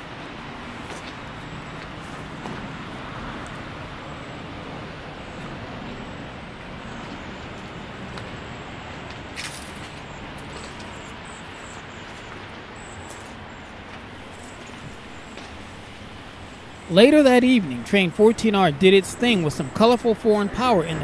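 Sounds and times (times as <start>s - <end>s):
engines rumbling: 0.0s - 21.0s.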